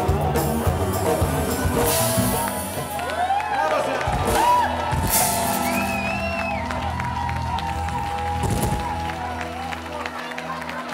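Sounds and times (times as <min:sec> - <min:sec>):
crowd clapping and cheering: 0:00.0 - 0:10.9
upbeat music: 0:00.0 - 0:10.9.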